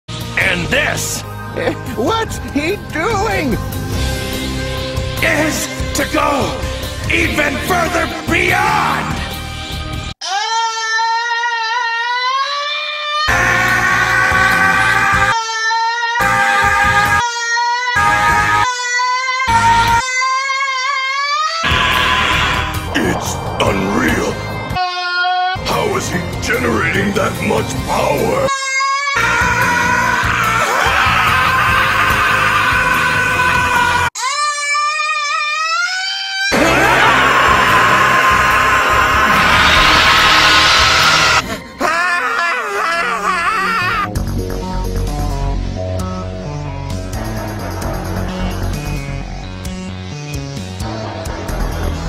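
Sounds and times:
music: 0.1s - 10.2s, 13.3s - 15.4s, 16.1s - 20.4s, 21.6s - 28.6s, 29.2s - 34.1s, 36.6s - 52.0s
person screaming: 21.6s - 24.2s, 29.2s - 34.4s, 36.5s - 44.1s
person screaming high-pitched: 21.7s - 23.2s.

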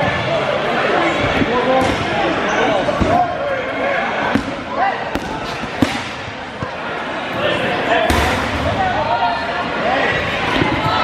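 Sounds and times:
balls smacking on gym floor: 4.3s - 6.3s.

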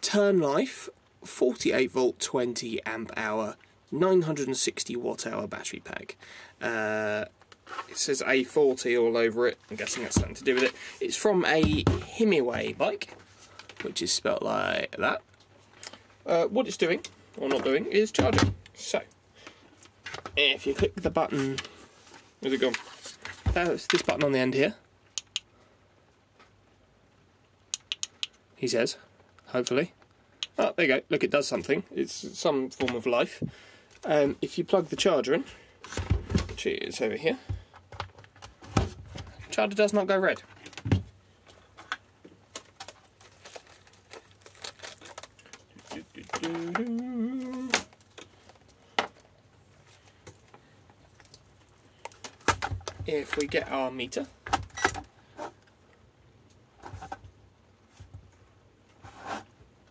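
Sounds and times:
man humming: 46.2s - 47.9s.

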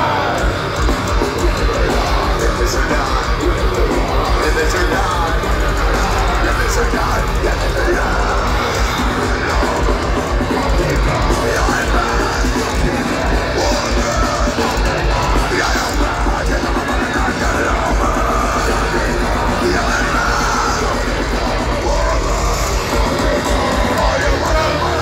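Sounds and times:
heavy metal band playing live: 0.0s - 25.0s
shouted vocals: 0.0s - 25.0s.

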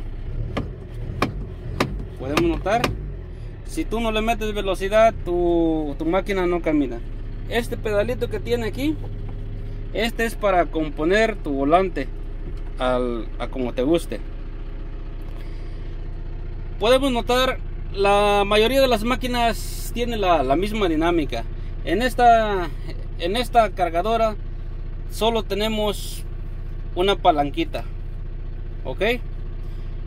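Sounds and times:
diesel engine idling: 0.0s - 30.0s.

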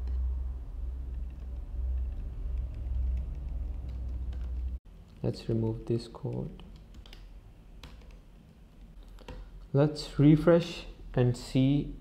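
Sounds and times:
low background hum: 0.0s - 12.0s
keyboard typing clicks: 6.2s - 8.2s.

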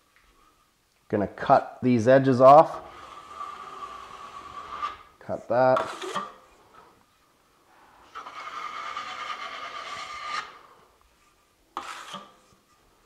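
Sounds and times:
trowel scraping wet compound: 5.7s - 6.4s, 8.1s - 10.6s, 11.8s - 12.6s
trowel scraping against hawk: 5.8s - 6.4s, 8.1s - 10.6s, 11.8s - 12.6s.

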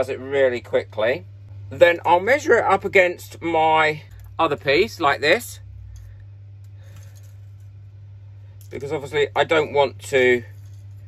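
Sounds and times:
steady low hum: 0.0s - 11.0s
thin wire rustling and ticking: 5.6s - 11.0s.

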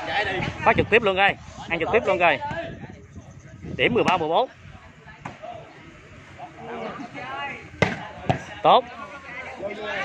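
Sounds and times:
volleyball hit by hand: 7.8s - 8.5s.

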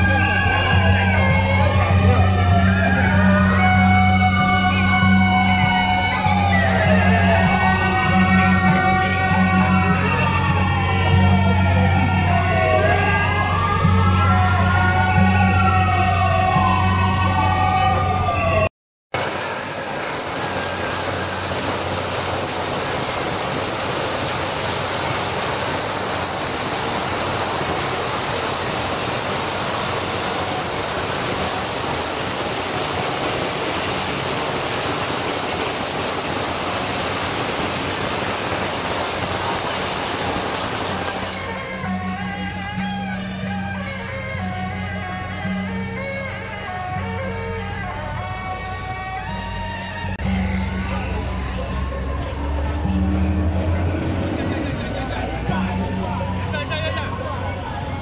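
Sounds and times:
siren-like tones: 0.0s - 18.7s, 50.1s - 57.3s.

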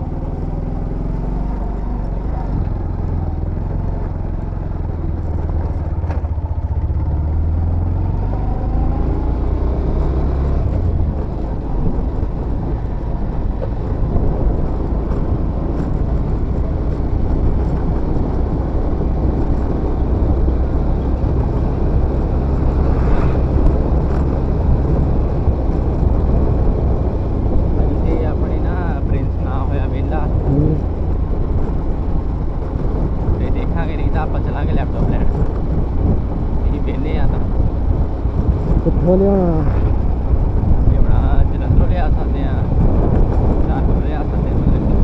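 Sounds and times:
motorcycle cruising: 0.0s - 45.0s
wind buffeting microphone: 8.3s - 45.0s.

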